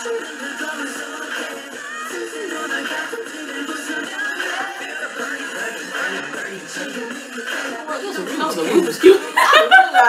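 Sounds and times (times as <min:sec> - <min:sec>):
women laughing: 0:08.7 - 0:10.0.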